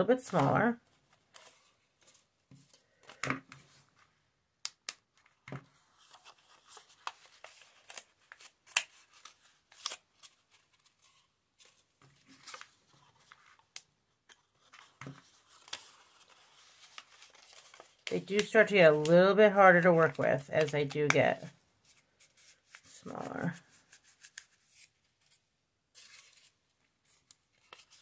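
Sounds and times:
paper rustling and crinkling: 0.0 - 4.2, 5.1 - 28.0.

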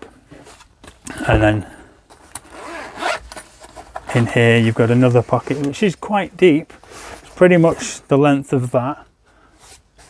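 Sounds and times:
zip being pulled open: 2.4 - 3.3.

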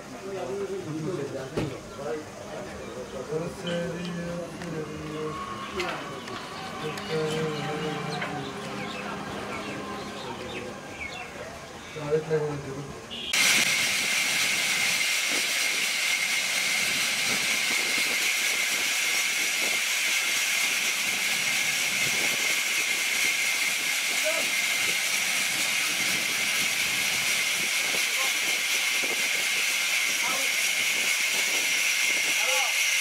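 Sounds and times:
band saw cutting log: 3.2 - 12.6, 13.3 - 33.0.

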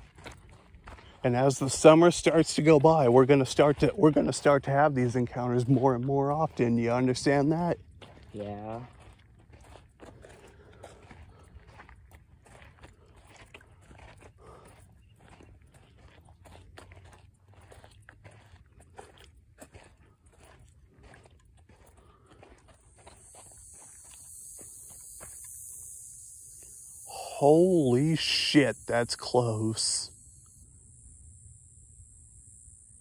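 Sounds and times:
footsteps crunching on dirt trail: 0.0 - 30.0
rattlesnake rattling: 22.8 - 33.0.

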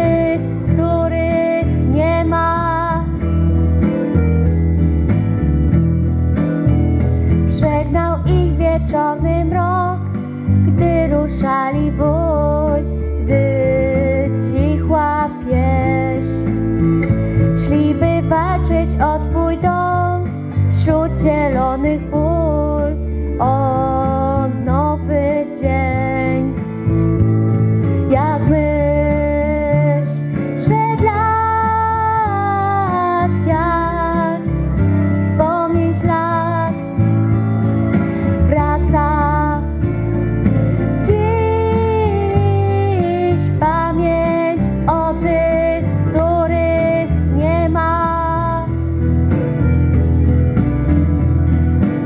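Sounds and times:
instrumental pop-rock backing track: 0.0 - 52.0.

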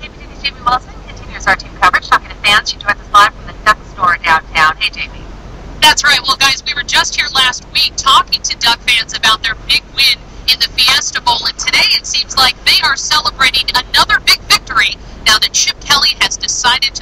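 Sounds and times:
news reporter talking: 0.0 - 17.0.

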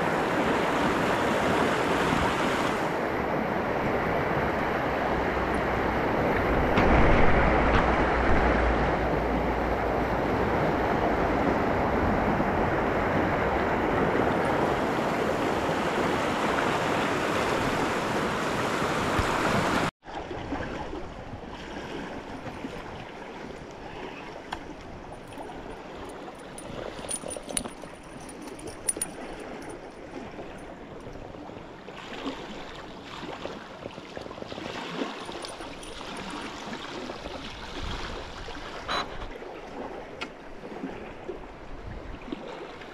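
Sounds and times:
river water rushing over rocks: 34.5 - 38.0.

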